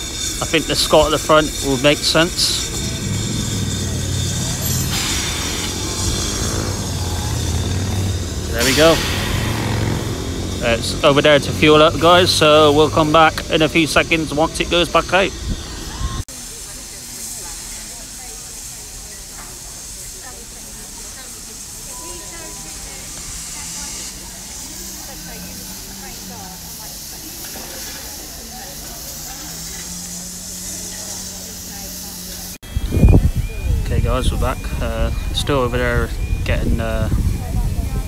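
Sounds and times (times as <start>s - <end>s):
steam locomotive hissing steam: 0.0s - 38.0s.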